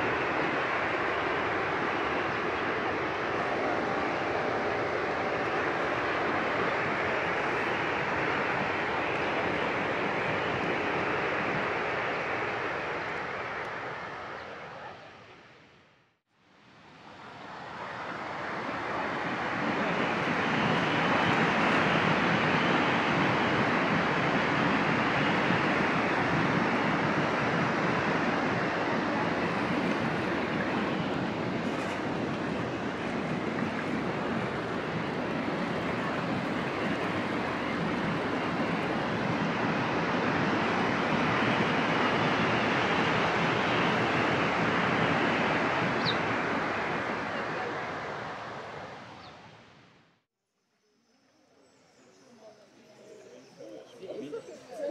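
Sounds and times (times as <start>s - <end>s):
churning river: 0.0s - 15.3s, 16.9s - 49.2s
rushing waterfall: 16.6s - 49.1s.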